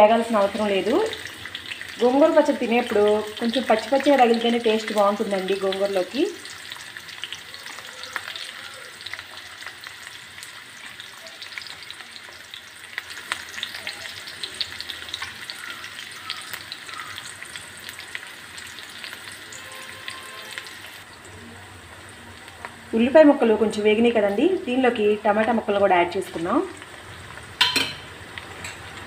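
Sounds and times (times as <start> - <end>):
onions sizzling in hot oil: 0.0 - 29.0
oil crackling and popping: 0.4 - 22.9, 25.4 - 29.0.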